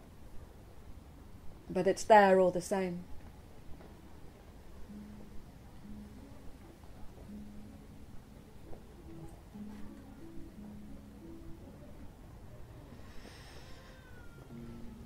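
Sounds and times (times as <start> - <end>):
soft slow background music: 0.0 - 15.0.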